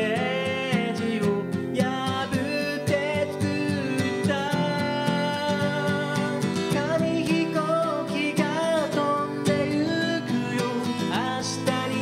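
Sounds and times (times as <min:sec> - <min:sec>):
acoustic guitar strumming: 0:00.0 - 0:12.0
man singing a ballad: 0:00.0 - 0:12.0.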